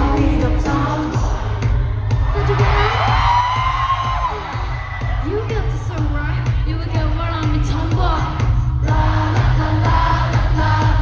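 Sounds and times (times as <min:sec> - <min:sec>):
heavy bass beat: 0:00.0 - 0:11.0
pop song through sound system: 0:00.0 - 0:11.0.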